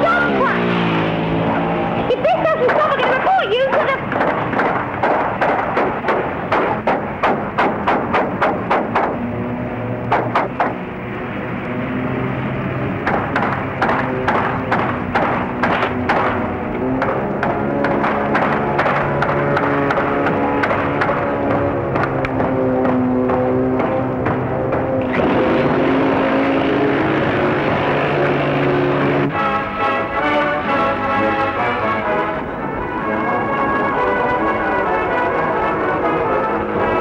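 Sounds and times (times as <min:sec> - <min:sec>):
sustained low notes: 0:00.0 - 0:37.0
rapid sharp knocks: 0:02.7 - 0:09.2, 0:10.1 - 0:10.8, 0:13.0 - 0:25.4.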